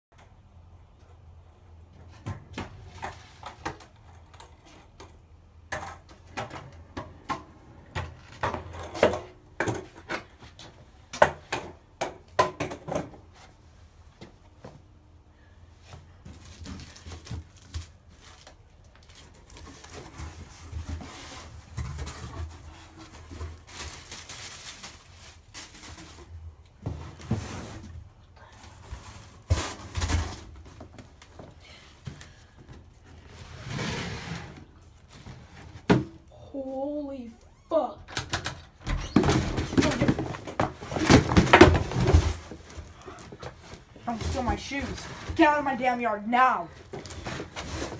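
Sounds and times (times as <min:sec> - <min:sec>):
rustling packing material: 0:15.9 - 0:33.8, 0:39.2 - 0:46.0, 0:46.7 - 0:47.9.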